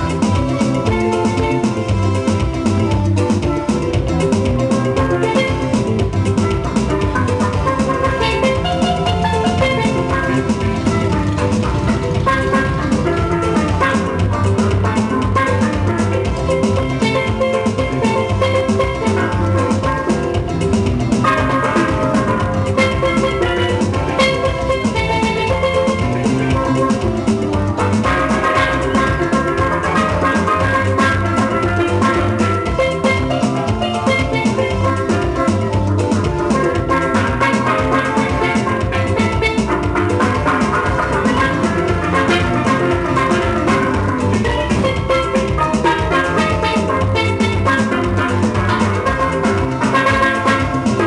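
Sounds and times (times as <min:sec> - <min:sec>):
steady drum beat: 0:00.0 - 0:51.0
steel pan notes: 0:00.0 - 0:51.0.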